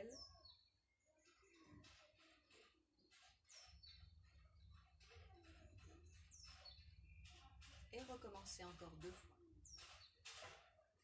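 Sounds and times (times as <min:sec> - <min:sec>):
faint birdsong chirps: 0:00.0 - 0:08.6.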